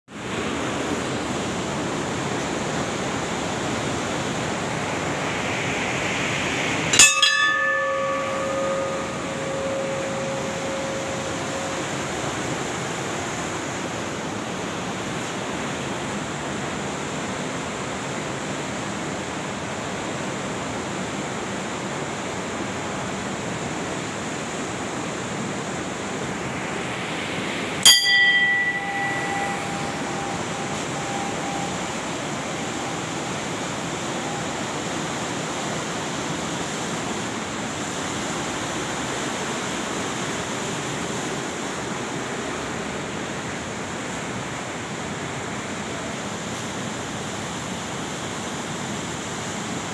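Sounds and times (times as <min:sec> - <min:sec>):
fast river rushing: 0:00.1 - 0:49.9
brass bell ringing: 0:06.9 - 0:13.0, 0:27.9 - 0:34.8.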